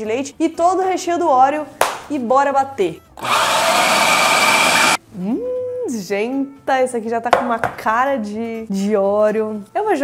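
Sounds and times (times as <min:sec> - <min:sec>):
food processor motor whining: 0:03.2 - 0:05.0.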